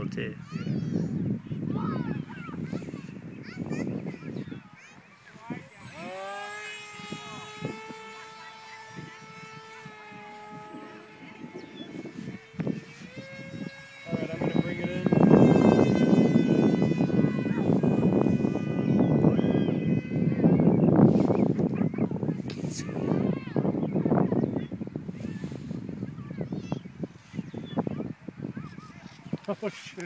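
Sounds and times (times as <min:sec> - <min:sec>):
electric motor and propeller whine: 0:00.0 - 0:30.0
wind rumble on microphone: 0:00.0 - 0:30.0.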